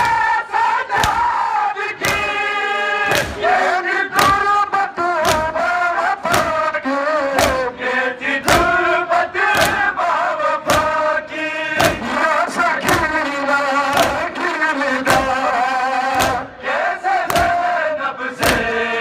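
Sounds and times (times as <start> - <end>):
people chanting in unison: 0.0 - 19.0
rhythmic chest-beating slaps: 0.0 - 19.0.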